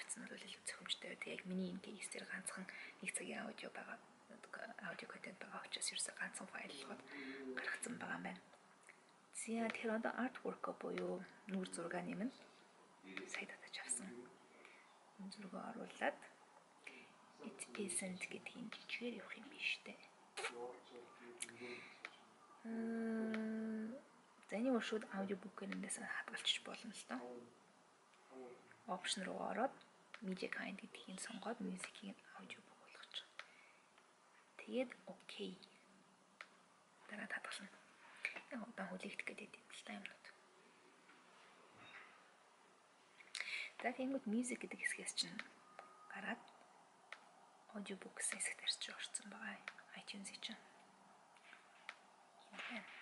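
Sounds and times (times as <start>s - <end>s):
woman talking: 0.0s - 8.4s, 9.3s - 12.4s, 13.3s - 14.2s, 15.2s - 16.3s, 17.5s - 20.1s, 22.6s - 27.2s, 28.9s - 33.2s, 34.6s - 35.6s, 37.1s - 40.4s, 43.4s - 46.5s, 47.7s - 50.7s, 52.5s - 53.0s
woman speaking softly: 0.0s - 8.5s, 9.3s - 12.5s, 13.1s - 14.3s, 15.2s - 16.4s, 17.4s - 20.1s, 22.6s - 27.4s, 28.8s - 33.4s, 34.6s - 35.7s, 37.1s - 40.4s, 43.4s - 46.5s, 47.7s - 50.8s, 52.5s - 53.0s
faint clicks: 21.4s - 22.3s, 32.9s - 35.8s, 36.4s - 36.7s, 38.2s - 38.6s, 43.1s - 53.0s.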